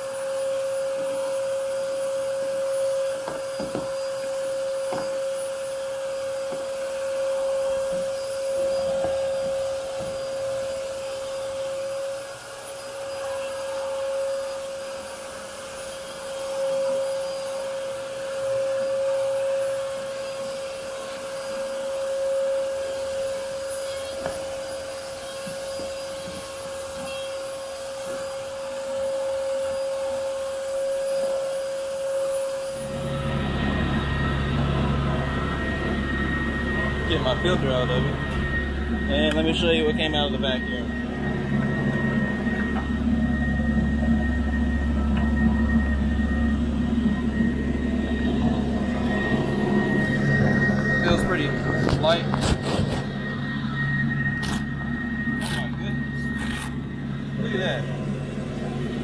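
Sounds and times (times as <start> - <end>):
vacuum cleaner motor whine: 0.0 - 59.0
tool scraping on carpet: 50.9 - 53.2, 54.4 - 54.7, 56.4 - 56.8.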